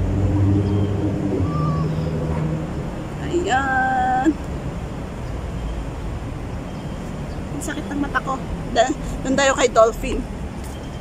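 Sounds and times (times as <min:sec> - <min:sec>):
low mechanical drone: 0:00.0 - 0:09.4.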